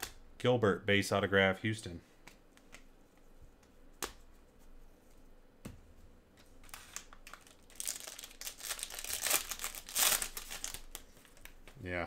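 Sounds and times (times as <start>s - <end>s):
foil wrapper tearing and crinkling: 6.7s - 11.5s.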